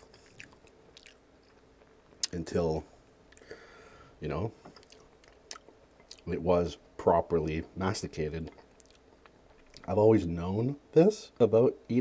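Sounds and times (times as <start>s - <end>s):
mouth clicks of chewing: 0.1s - 1.6s, 4.8s - 6.3s.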